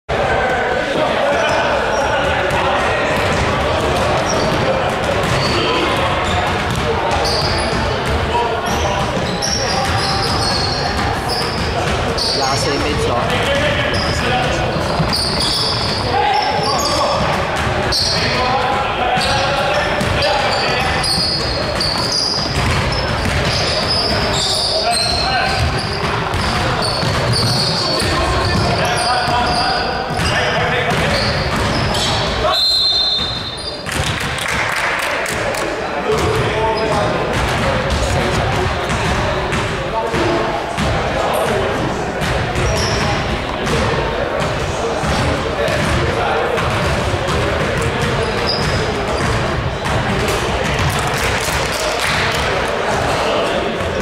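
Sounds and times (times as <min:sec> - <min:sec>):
indistinct voices echoing: 0:00.1 - 0:54.0
basketball bouncing on hardwood floor: 0:06.6 - 0:06.8.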